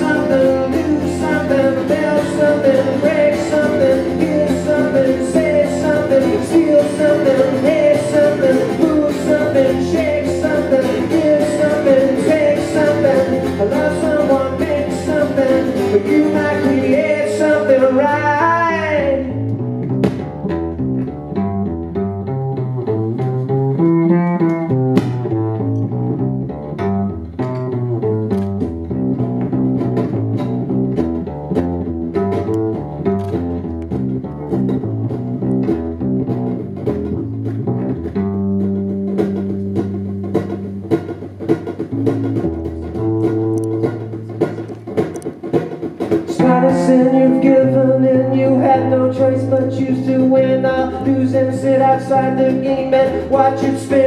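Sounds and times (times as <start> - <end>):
person singing: 0.0 - 19.4, 46.3 - 54.0
acoustic guitar picked and strummed: 0.0 - 54.0
double bass line: 0.0 - 54.0.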